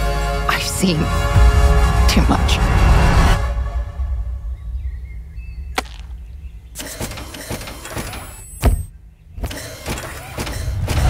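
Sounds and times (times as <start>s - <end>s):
steady low rumble: 1.3s - 6.8s.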